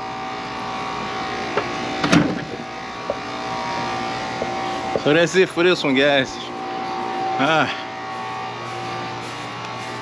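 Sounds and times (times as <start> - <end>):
air conditioner units humming: 0.0 - 10.0.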